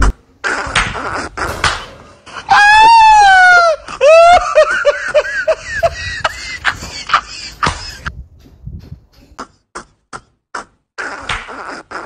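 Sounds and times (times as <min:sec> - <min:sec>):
high-pitched wailing cries: 0:02.4 - 0:04.6.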